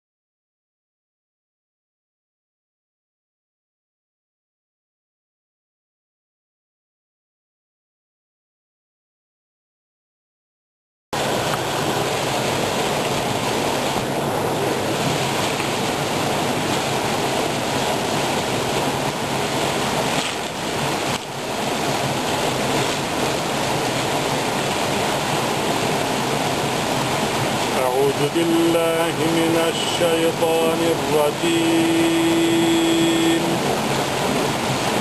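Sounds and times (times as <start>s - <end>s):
waterfall and stream rushing: 11.2s - 35.0s.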